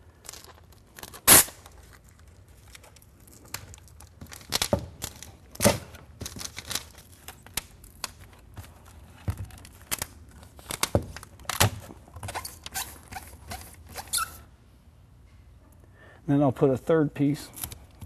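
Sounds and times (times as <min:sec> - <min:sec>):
housewrap and tape crinkling: 0:00.0 - 0:14.4.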